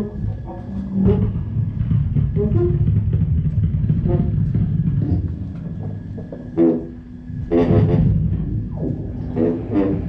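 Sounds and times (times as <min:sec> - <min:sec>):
low rumbling electronic drone: 0:00.0 - 0:10.0.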